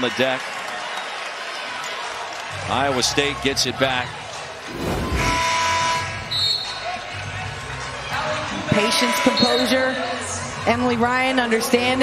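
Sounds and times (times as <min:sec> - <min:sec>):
crowd noise: 0:03.6 - 0:05.8.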